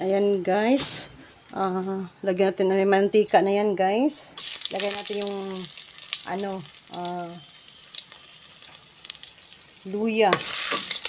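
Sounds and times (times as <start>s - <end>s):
ginger sizzling in hot oil: 4.4s - 11.0s.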